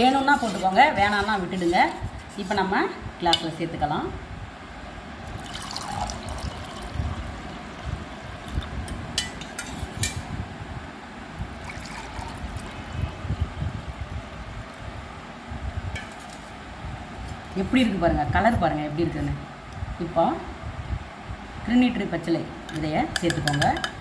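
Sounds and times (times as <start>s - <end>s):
juice pouring into a glass: 5.4s - 7.3s, 11.6s - 13.2s.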